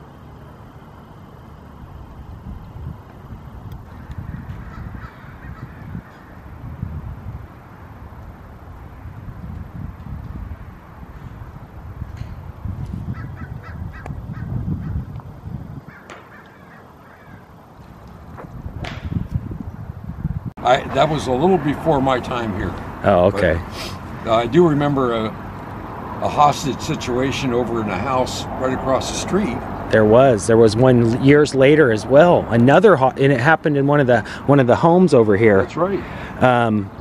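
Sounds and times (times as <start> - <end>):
wind rumble on microphone: 1.6 - 32.7
birds calling: 3.7 - 6.7, 12.2 - 19.2, 33.8 - 37.0.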